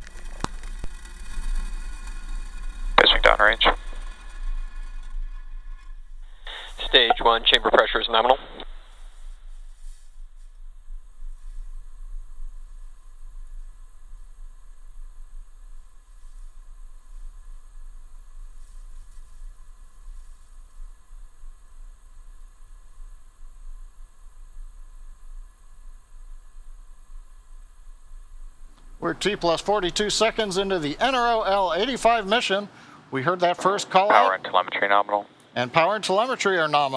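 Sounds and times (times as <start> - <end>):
rocket engines rumbling: 0.0 - 9.0, 28.7 - 36.9
faint steady hiss: 2.0 - 4.9, 6.1 - 36.9.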